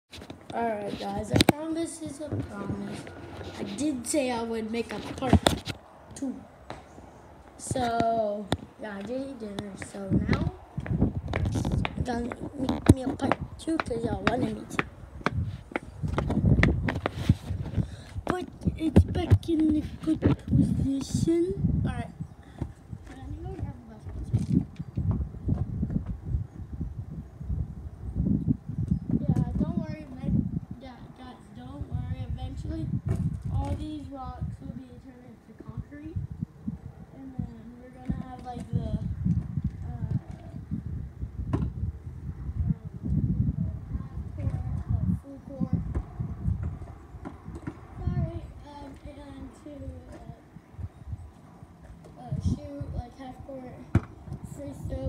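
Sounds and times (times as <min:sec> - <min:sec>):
basketball bouncing on gravel: 0:11.4 - 0:17.1.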